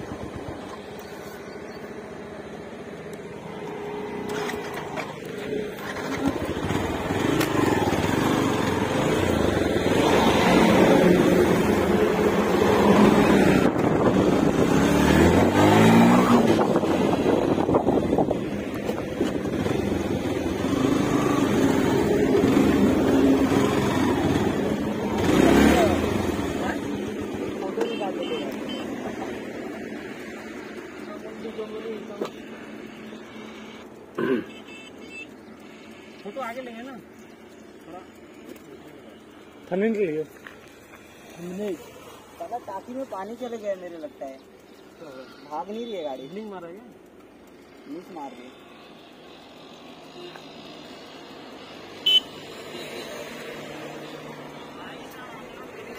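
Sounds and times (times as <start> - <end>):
motorcycle engine revving: 0.0 - 55.9.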